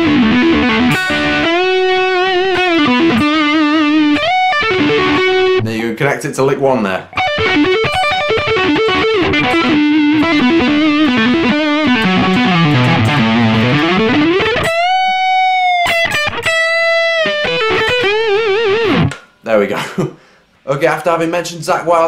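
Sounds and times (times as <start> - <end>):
electric guitar lead run: 0.0 - 5.6, 7.1 - 19.2.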